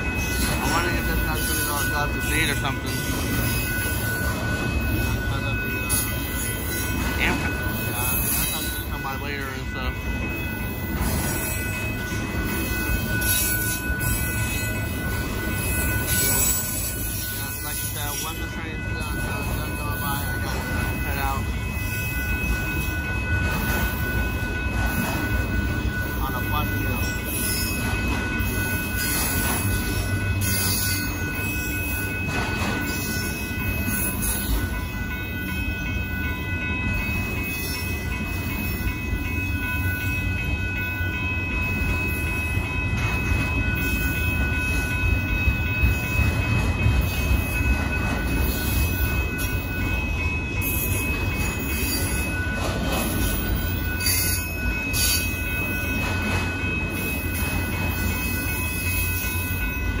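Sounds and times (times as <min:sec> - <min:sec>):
train wheels rumbling on rail: 0:00.0 - 1:00.0.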